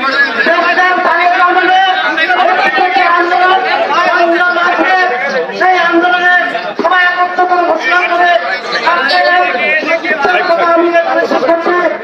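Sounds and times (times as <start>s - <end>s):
crowd chatter: 0.0s - 12.0s
man speaking into microphone: 0.0s - 12.0s.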